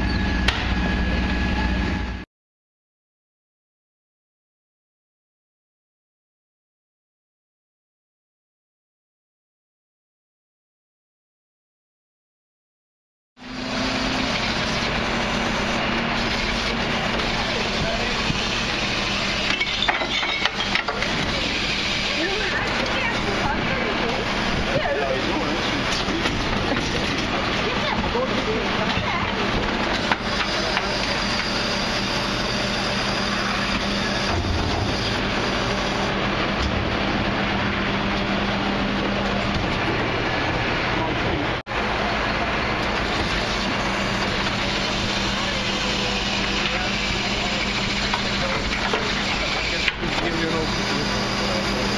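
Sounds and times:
hydraulic bin lift: 0.0s - 2.2s, 13.4s - 51.9s
refuse truck running: 0.0s - 2.2s, 13.4s - 51.9s
steady hum: 13.4s - 51.9s.

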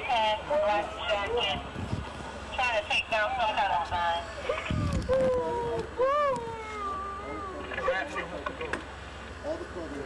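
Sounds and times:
woman wailing: 4.7s - 7.6s.

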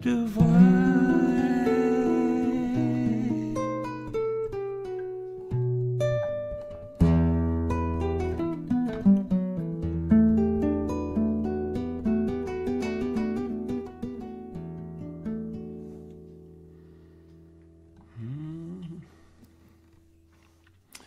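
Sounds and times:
classical guitar fingerpicking: 0.0s - 18.2s.

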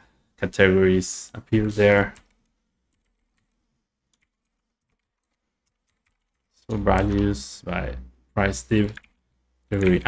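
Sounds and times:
typing on computer keyboard: 2.1s - 7.2s.

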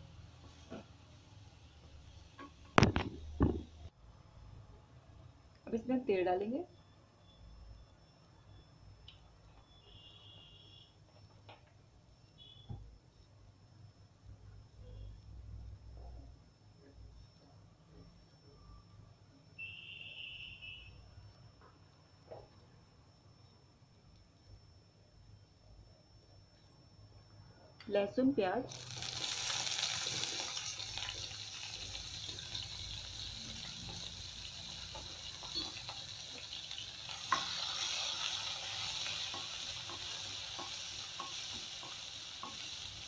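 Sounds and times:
faint low hum: 3.2s - 28.7s.

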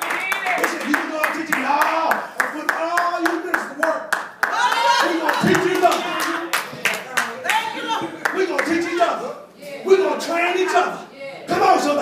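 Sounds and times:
congregation clapping: 0.0s - 9.1s.

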